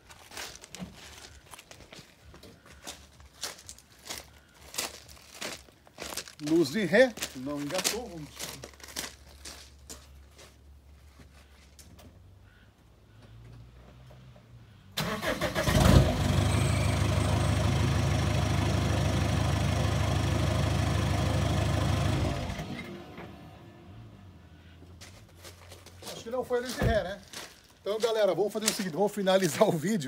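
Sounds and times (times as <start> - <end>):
diesel engine cranking and starting: 15.0 - 24.4
diesel engine idling: 15.0 - 25.0
engine running down: 15.7 - 24.4.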